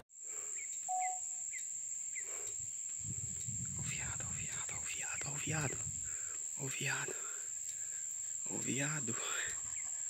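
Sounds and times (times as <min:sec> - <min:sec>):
high-pitched insect trill: 0:00.1 - 0:10.0
bird chirps: 0:00.5 - 0:02.6.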